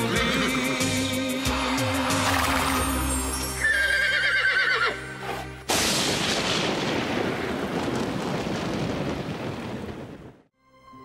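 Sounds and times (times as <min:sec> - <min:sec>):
horse whinnying: 0:00.0 - 0:00.9, 0:03.6 - 0:05.4
theme music: 0:00.0 - 0:05.7.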